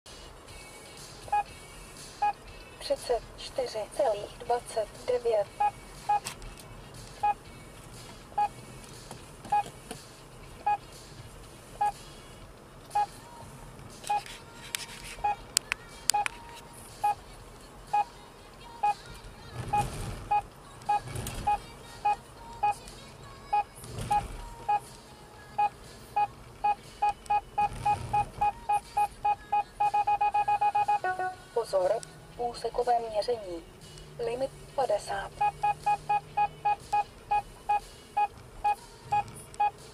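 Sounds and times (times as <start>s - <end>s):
road and traffic rumble: 0.1s - 39.9s
warning device beeping: 25.6s - 31.2s, 35.3s - 39.7s.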